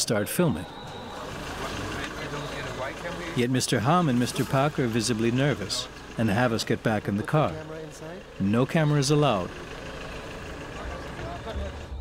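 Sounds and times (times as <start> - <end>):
faint street noise: 0.0 - 12.0
motor vehicle rumble: 0.4 - 12.0.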